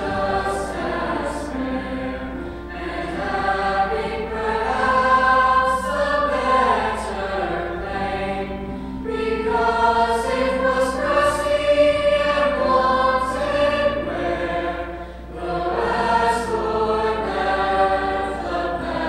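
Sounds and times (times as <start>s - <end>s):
choir singing harmony: 0.0s - 19.0s.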